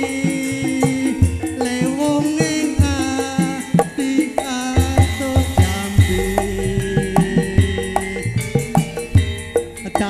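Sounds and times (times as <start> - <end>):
hand drum strokes: 0.0 - 10.0
ringing metallophones and gongs: 0.0 - 10.0.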